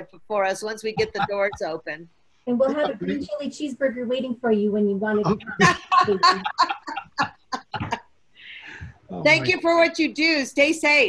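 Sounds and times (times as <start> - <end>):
man laughing: 1.0 - 1.6, 2.7 - 3.2, 5.3 - 8.0
soft breathy hiss: 8.1 - 9.9.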